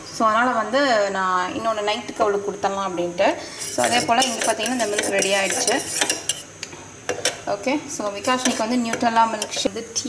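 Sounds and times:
spoon stirring in a mug: 0:03.6 - 0:06.5, 0:08.2 - 0:09.7.

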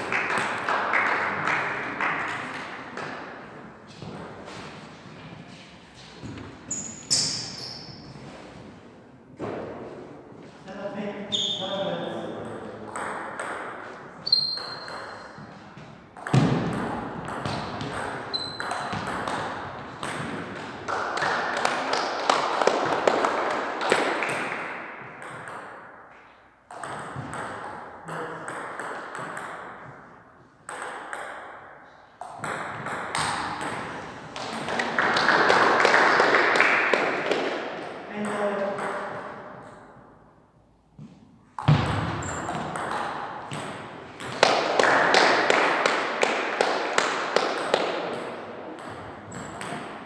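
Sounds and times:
voices and hall noise: 0:00.0 - 0:14.5, 0:27.8 - 0:29.0, 0:33.0 - 0:40.2, 0:42.2 - 0:50.0.

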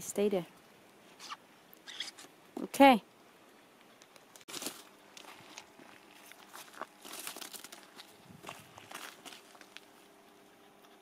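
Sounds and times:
shoes crunching on gravel: 0:04.5 - 0:10.0.

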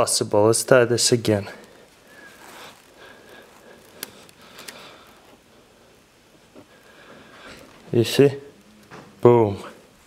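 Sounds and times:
rubber bands handled: 0:01.3 - 0:05.5.

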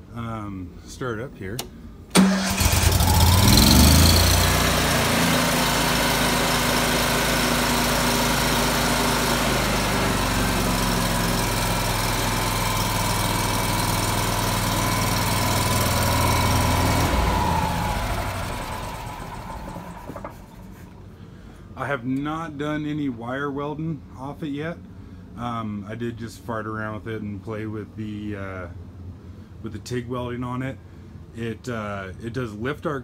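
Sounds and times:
generator engine running: 0:02.1 - 0:21.0.

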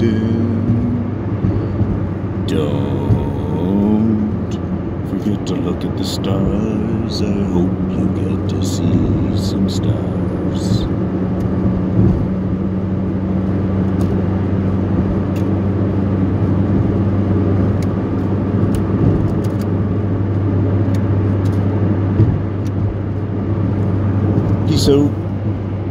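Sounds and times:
car engine and road hum: 0:00.0 - 0:25.9.

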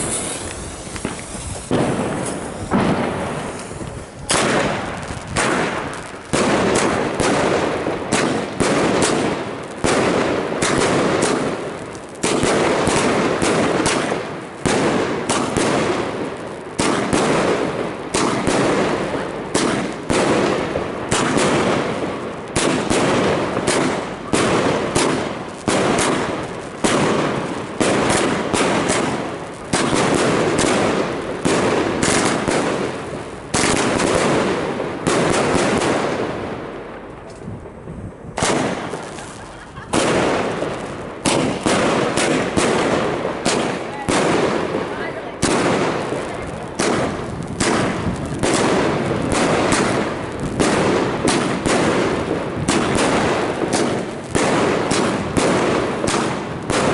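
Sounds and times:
firework shots: 0:00.0 - 0:56.9.

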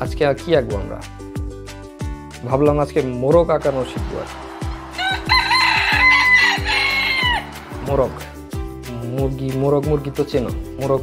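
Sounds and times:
background music with steady beat: 0:00.0 - 0:11.0
rooster crowing: 0:04.6 - 0:07.6.

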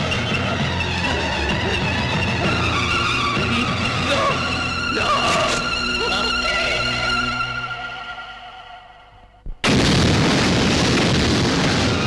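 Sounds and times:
dramatic background music: 0:00.0 - 0:09.0.

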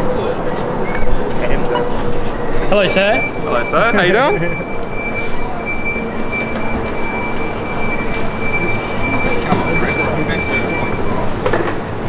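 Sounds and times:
crowd chatter: 0:00.0 - 0:12.0
low street rumble: 0:00.0 - 0:12.0.

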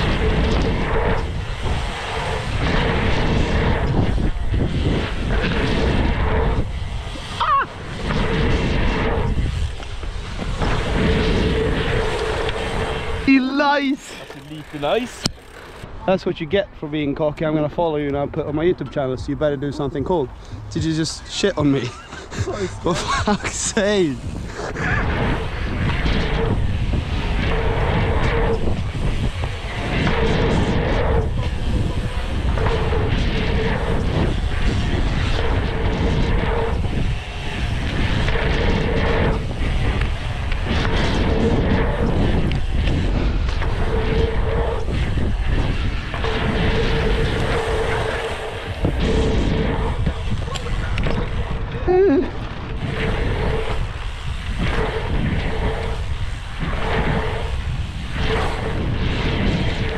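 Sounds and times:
buzzing tone: 0:00.0 - 0:16.0, 0:23.1 - 0:59.9
bike tyres rolling on dirt: 0:00.0 - 0:59.9
wind on microphone: 0:00.0 - 0:59.9.

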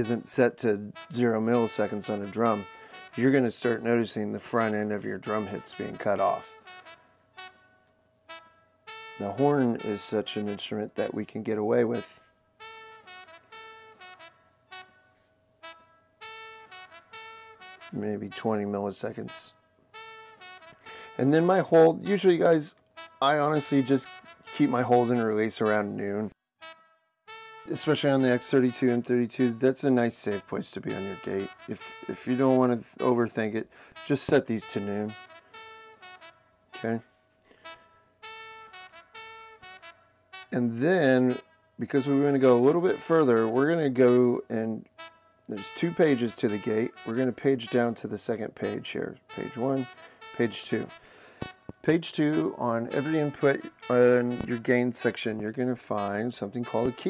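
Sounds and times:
short brass notes: 0:00.0 - 0:07.7, 0:08.3 - 0:15.0, 0:15.6 - 0:48.0, 0:48.6 - 0:57.0.

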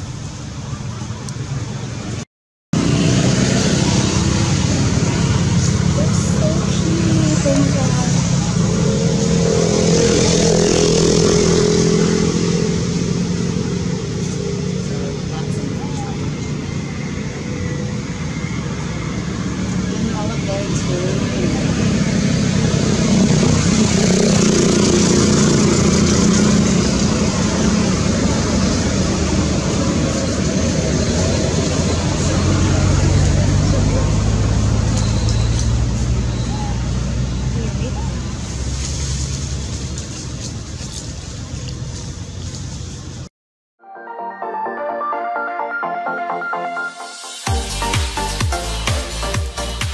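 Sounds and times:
voices: 0:05.0 - 0:09.4, 0:14.4 - 0:22.4, 0:32.1 - 0:38.4.

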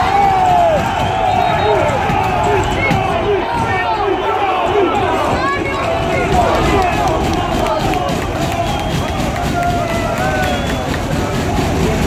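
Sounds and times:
crowd noise: 0:00.0 - 0:12.0
supporters chanting: 0:00.0 - 0:12.0.

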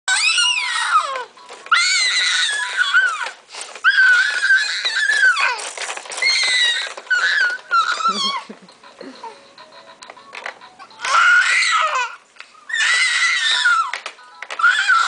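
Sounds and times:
baby shrieking: 0:00.1 - 0:05.6, 0:06.2 - 0:08.5, 0:11.0 - 0:14.0, 0:14.6 - 0:15.0.

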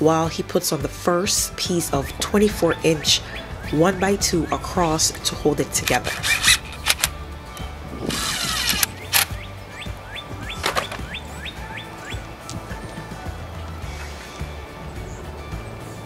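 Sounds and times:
background music: 0:00.0 - 0:16.0
power drill driving a screw: 0:06.1 - 0:07.1, 0:08.1 - 0:09.3.

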